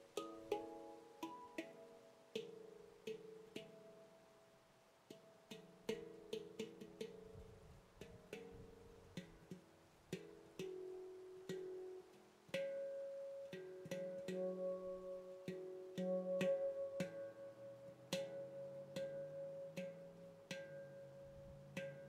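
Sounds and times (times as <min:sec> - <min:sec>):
handpan notes ringing: 0:00.0 - 0:04.4, 0:05.1 - 0:22.0.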